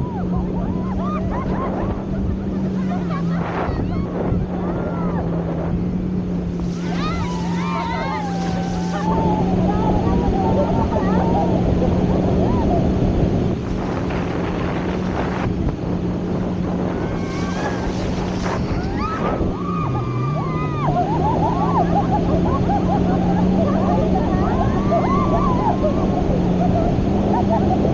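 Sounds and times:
people crying out and laughing: 0:00.0 - 0:05.9, 0:06.6 - 0:13.2, 0:16.5 - 0:27.9
motorboat engine humming: 0:00.0 - 0:27.9
water rushing: 0:00.0 - 0:27.9
wind on microphone: 0:00.0 - 0:27.9.

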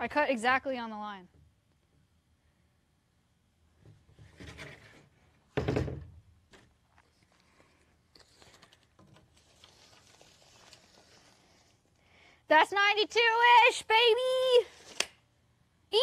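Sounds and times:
soft handling noise: 0:06.5 - 0:12.0.

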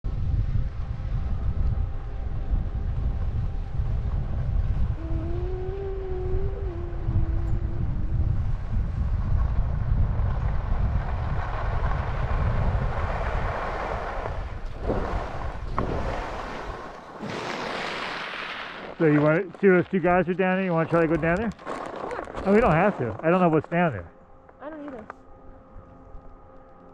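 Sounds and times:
wind buffeting microphone: 0:00.0 - 0:17.0
brief held tone: 0:04.8 - 0:08.6
sharp ski scrapes: 0:20.8 - 0:23.2.

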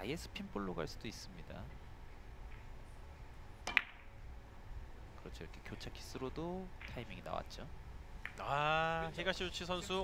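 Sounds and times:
cue tip striking ball: 0:03.6 - 0:04.1.

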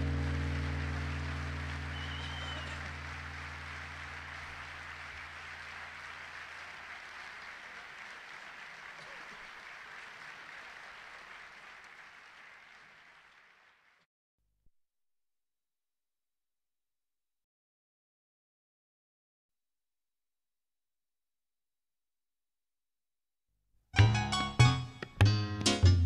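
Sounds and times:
audience applause: 0:00.0 - 0:14.1.

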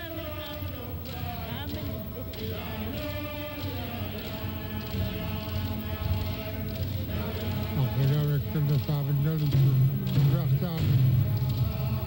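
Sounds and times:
voices chanting a song: 0:00.0 - 0:12.0.

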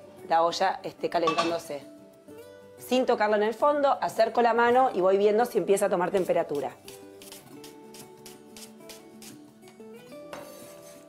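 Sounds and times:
background music: 0:00.0 - 0:11.0
knife slicing on cutting board: 0:06.8 - 0:09.4, 0:10.4 - 0:11.0.

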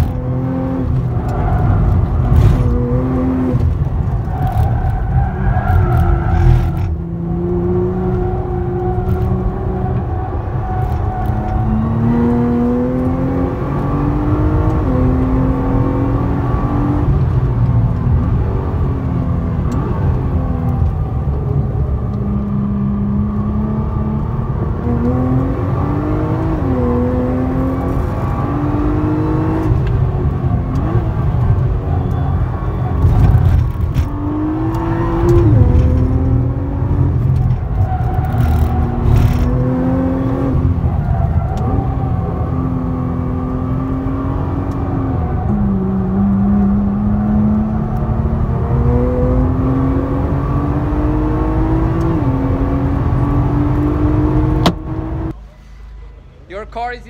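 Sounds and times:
car engine revving: 0:00.0 - 0:55.4.

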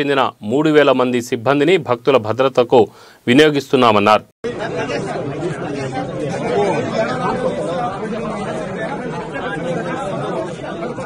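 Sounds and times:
crowd of men chattering: 0:04.4 - 0:11.0.

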